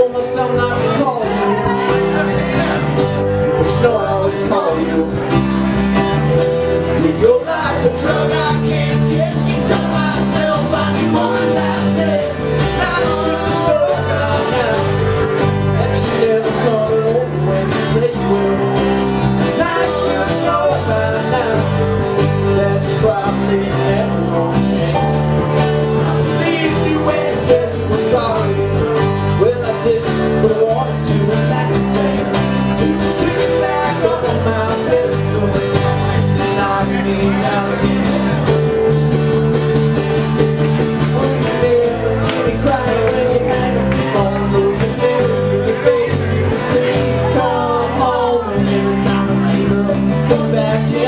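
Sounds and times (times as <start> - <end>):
bass guitar: 0.0 - 51.0
drums: 0.0 - 51.0
electric guitar: 0.0 - 51.0
strummed acoustic guitar: 0.0 - 51.0.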